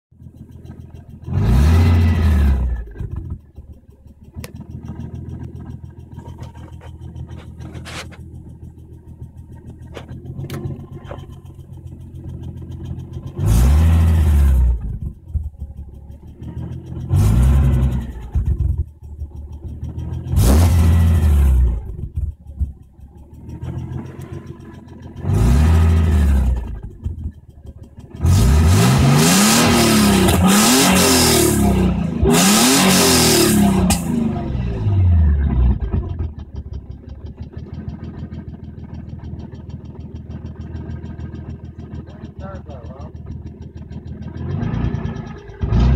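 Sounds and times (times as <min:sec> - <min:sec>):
car engine idling and revving: 0:00.0 - 0:45.9.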